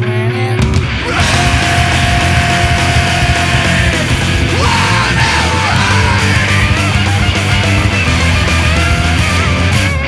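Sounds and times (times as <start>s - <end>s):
distorted guitar rock band: 0.0s - 10.0s
person yelling vocals: 1.0s - 7.0s.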